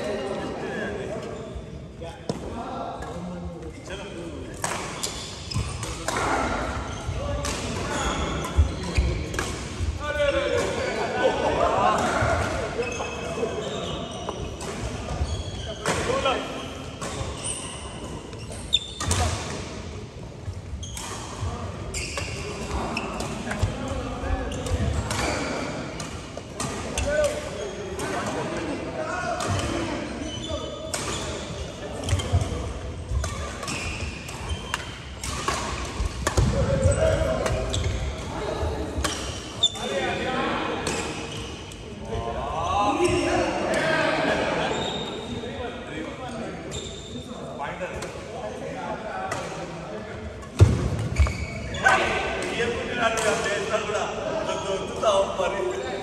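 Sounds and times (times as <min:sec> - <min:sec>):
players' voices: 0:00.0 - 0:56.0
rackets hitting shuttlecock: 0:04.6 - 0:06.5, 0:07.3 - 0:09.8, 0:30.9 - 0:32.5, 0:33.1 - 0:39.9, 0:50.4 - 0:53.4.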